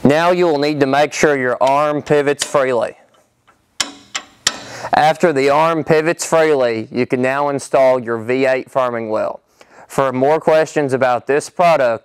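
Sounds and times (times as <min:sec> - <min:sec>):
sharp metal clicks: 0:01.6 - 0:05.0.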